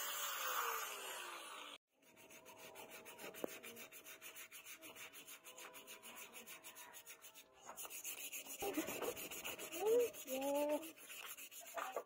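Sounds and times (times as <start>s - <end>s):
sandpaper sanding wood: 2.0s - 12.0s.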